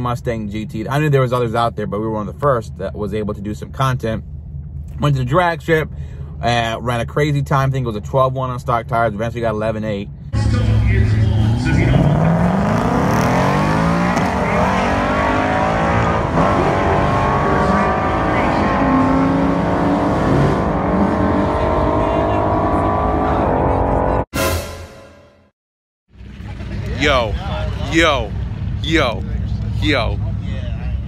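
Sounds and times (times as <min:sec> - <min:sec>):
car engine at full throttle: 0:10.4 - 0:24.3.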